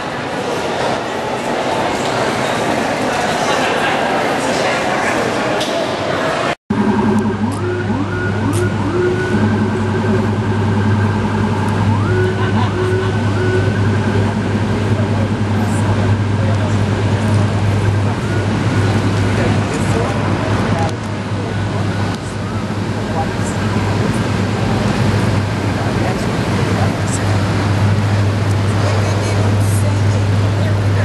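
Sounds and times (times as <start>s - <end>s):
traffic: 0.0s - 31.0s
siren: 6.7s - 16.3s, 17.0s - 20.1s, 21.5s - 23.8s
steady low hum: 6.7s - 31.0s.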